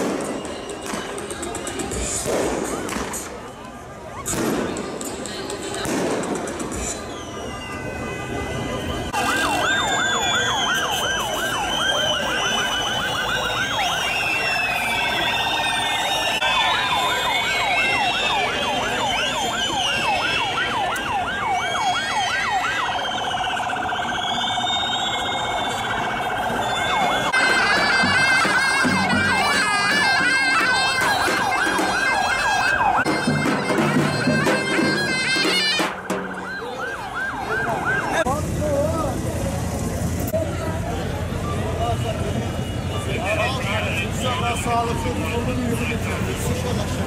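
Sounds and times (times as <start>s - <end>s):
street crowd hubbub: 0.0s - 47.0s
warbling siren: 7.0s - 38.3s.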